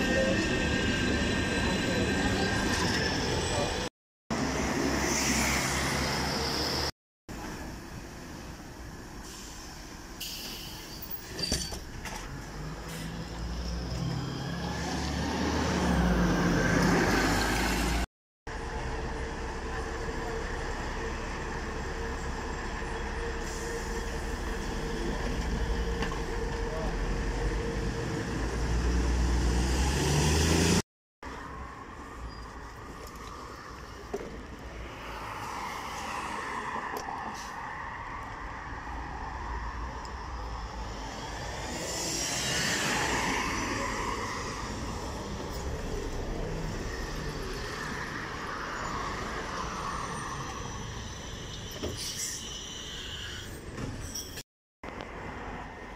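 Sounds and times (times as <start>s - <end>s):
bus engines running: 0.0s - 54.1s
steady traffic noise: 0.0s - 55.9s.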